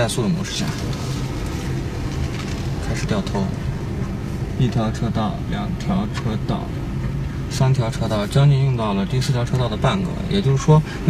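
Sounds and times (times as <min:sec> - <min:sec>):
car engine and tyre hum: 0:00.0 - 0:11.0.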